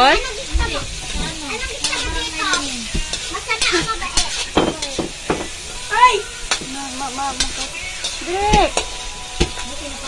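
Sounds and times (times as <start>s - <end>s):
vegetables sizzling in a wok: 0.0s - 10.0s
wooden spoon knocking a pan: 4.5s - 5.6s.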